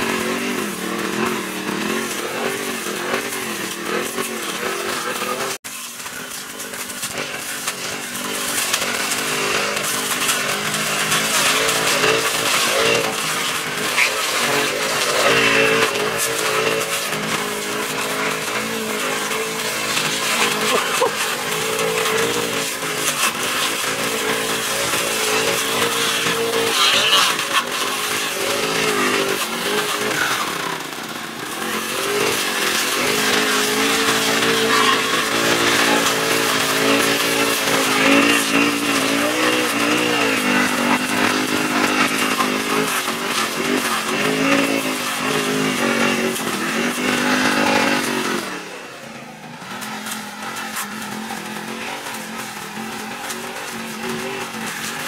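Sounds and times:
brush cutter engine revving: 0.0s - 55.0s.

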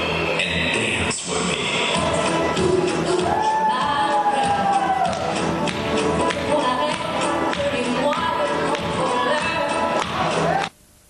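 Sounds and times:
rock and roll dance music: 0.0s - 10.7s.

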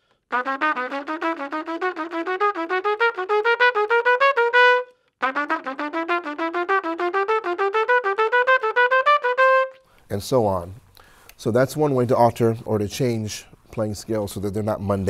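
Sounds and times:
trumpet playing scale runs: 0.3s - 9.8s.

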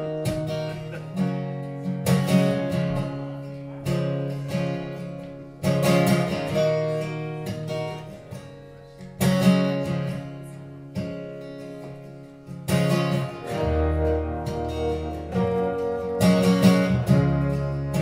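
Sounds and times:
acoustic guitar strumming chords: 0.0s - 18.0s.

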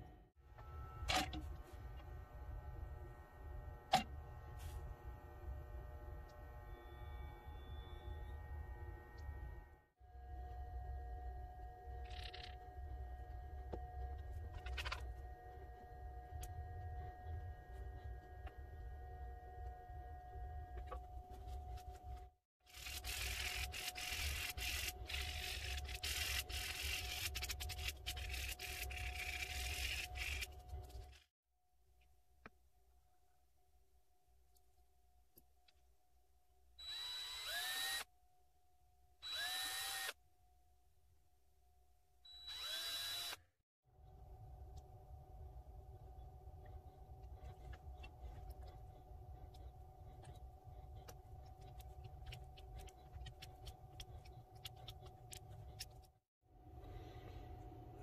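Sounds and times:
background hum: 0.0s - 31.3s, 43.9s - 58.0s
sandpaper rubbing on resin: 22.7s - 31.2s.

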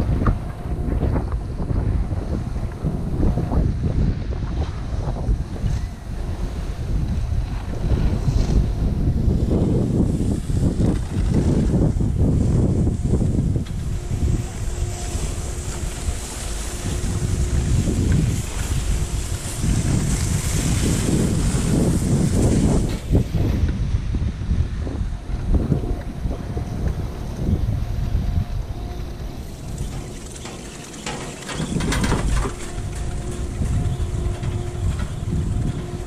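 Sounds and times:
faint steady hum: 0.0s - 36.0s
wind buffeting microphone: 0.0s - 36.0s.

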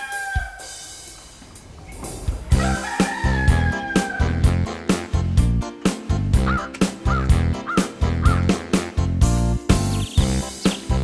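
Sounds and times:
rooster crowing: 0.0s - 1.0s, 2.5s - 4.4s
music with thumping bass beat: 2.3s - 11.0s.

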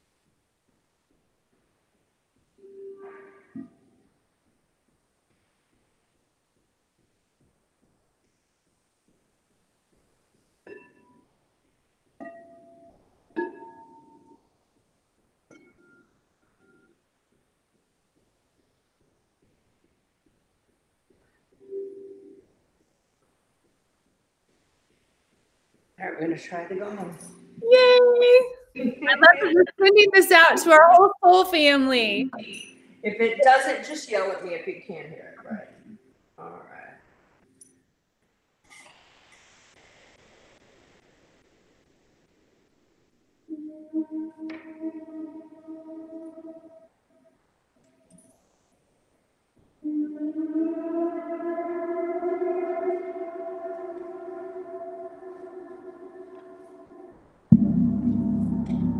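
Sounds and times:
gong ringing: 57.5s - 58.9s.

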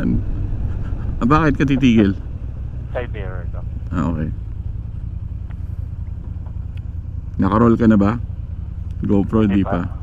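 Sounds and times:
motor scooter engine idling: 1.7s - 10.0s.

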